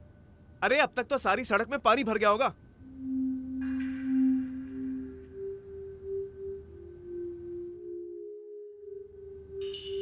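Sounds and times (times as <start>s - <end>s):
sustained electronic drone tones: 2.8s - 10.0s.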